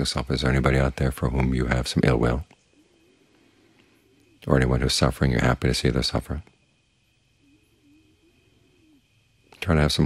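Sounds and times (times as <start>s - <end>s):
faint low wavering tone: 0.0s - 10.0s.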